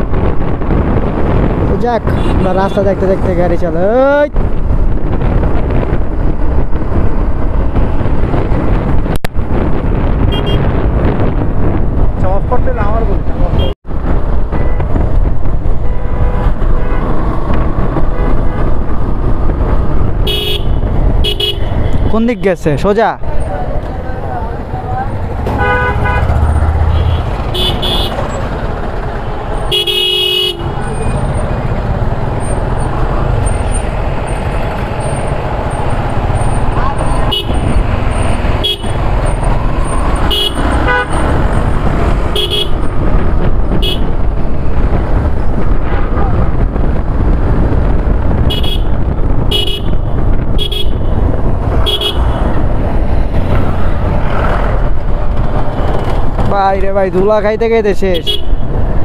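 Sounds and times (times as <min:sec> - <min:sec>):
vehicle horns tooting: 0:02.1 - 0:02.9, 0:10.3 - 0:10.7, 0:13.5 - 0:13.8, 0:15.7 - 0:17.2, 0:20.2 - 0:22.2, 0:25.5 - 0:28.4, 0:29.6 - 0:31.4, 0:36.9 - 0:37.8, 0:38.6 - 0:39.1, 0:40.2 - 0:41.3, 0:42.3 - 0:42.9, 0:43.7 - 0:44.1, 0:48.4 - 0:51.2, 0:51.8 - 0:52.5, 0:58.1 - 0:58.6
motorcycle engine rumble: 0:23.2 - 0:57.3.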